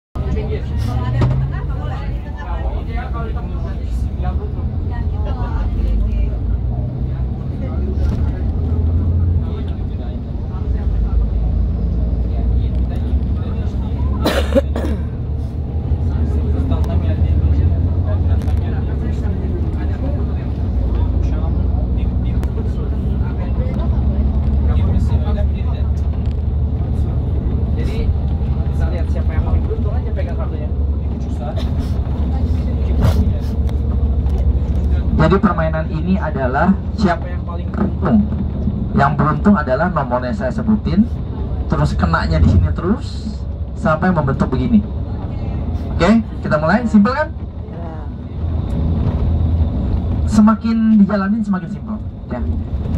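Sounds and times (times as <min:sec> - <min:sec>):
bus rumbling: 0:00.1 - 0:52.9
indistinct passenger voices: 0:00.2 - 0:52.9.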